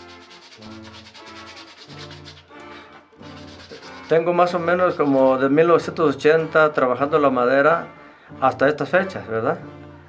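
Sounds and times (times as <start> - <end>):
sandpaper rubbing on wood: 0.0 - 2.6, 3.2 - 5.4
soft background music: 0.0 - 10.0.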